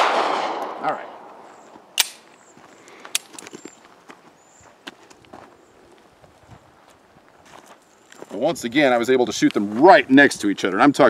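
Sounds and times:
footsteps crunching on dirt: 1.3s - 10.2s
sharp click: 2.0s - 2.3s.

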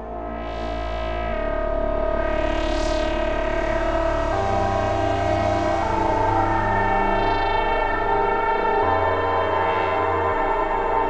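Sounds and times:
ambient synthesizer drone: 0.0s - 11.0s.

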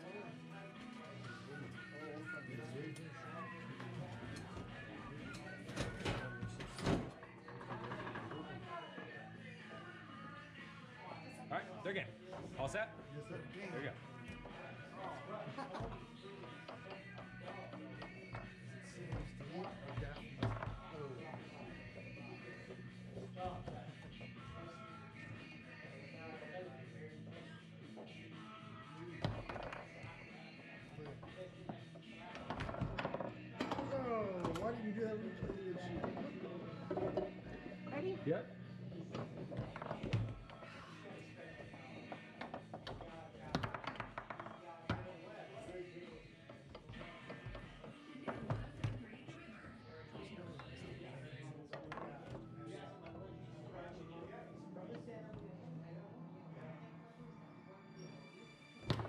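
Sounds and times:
background music: 0.0s - 59.0s
voices in a room: 0.0s - 59.0s
foosball rods knocking: 41.6s - 45.1s
foosball ball clacking: 41.7s - 45.1s.

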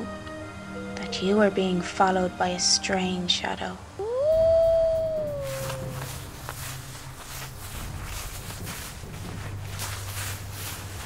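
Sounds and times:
wolf howling: 4.0s - 6.4s.

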